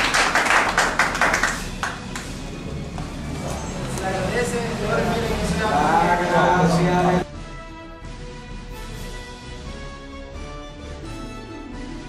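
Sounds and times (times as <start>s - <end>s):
group clapping in rhythm: 0.0s - 3.1s.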